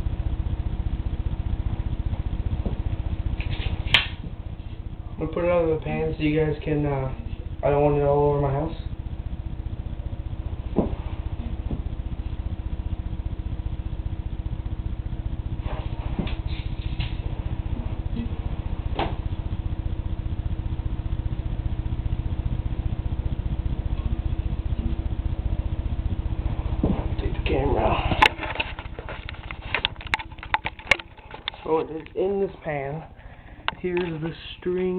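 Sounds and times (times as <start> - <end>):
low background hum: 0.0 - 34.9.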